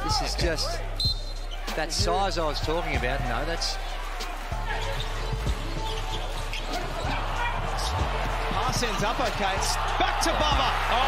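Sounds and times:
background music with low bass: 0.0s - 11.0s.

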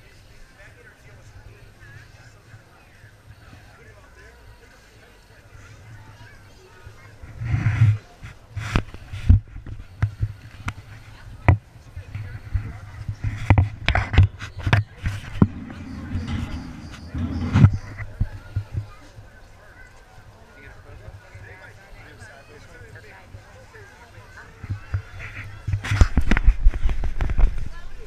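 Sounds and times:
indistinct voices: 0.0s - 28.0s
low rumble: 15.1s - 18.9s.

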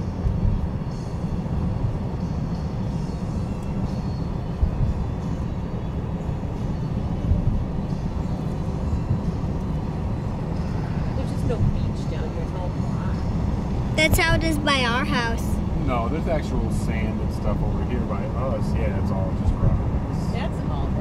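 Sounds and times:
road and wind noise rumble: 0.0s - 21.0s.

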